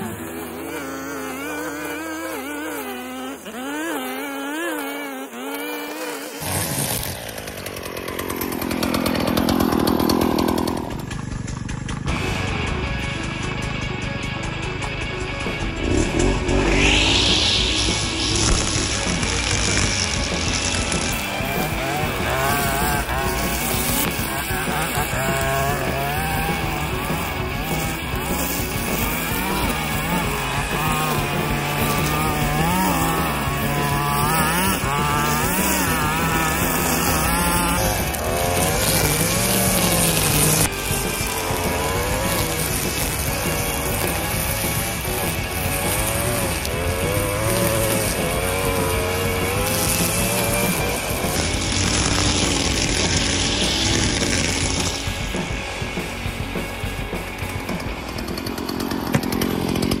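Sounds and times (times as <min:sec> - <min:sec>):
string trimmer engine cutting grass: 0:00.0 - 0:13.0, 0:15.0 - 1:00.0.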